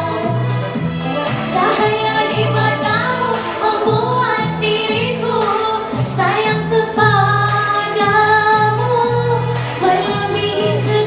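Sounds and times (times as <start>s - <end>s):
amplified backing music: 0.0s - 11.0s
woman singing into a microphone: 0.0s - 11.0s.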